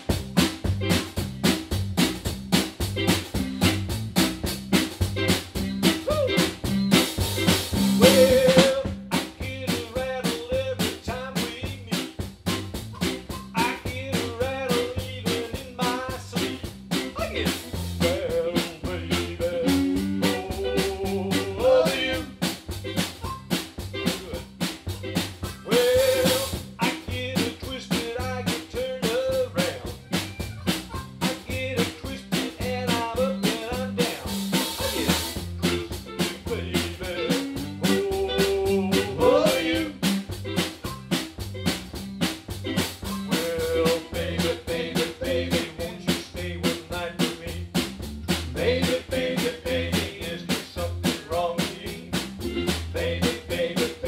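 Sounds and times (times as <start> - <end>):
band playing a song: 0.0 - 54.0.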